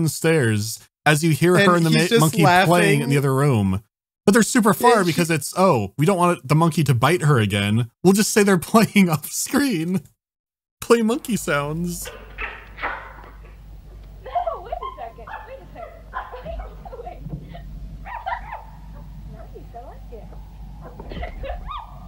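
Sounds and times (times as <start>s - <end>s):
chimpanzee calling: 1.6s - 3.2s, 14.3s - 16.9s, 18.1s - 19.1s
girl laughing: 1.6s - 3.2s, 15.6s - 18.6s, 20.9s - 21.9s
steady low hum: 11.0s - 22.0s.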